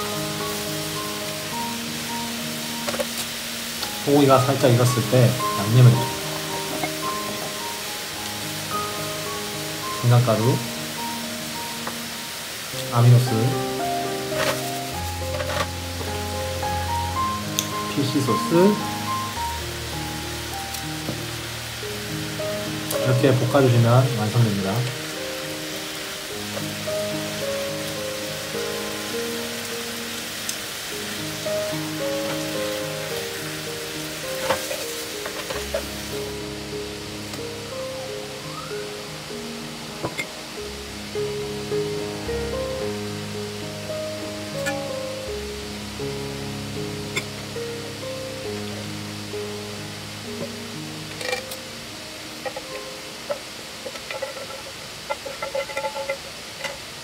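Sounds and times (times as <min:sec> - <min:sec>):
background music: 0:00.0 - 0:54.5
meat sizzling in frying pan: 0:00.0 - 0:57.0.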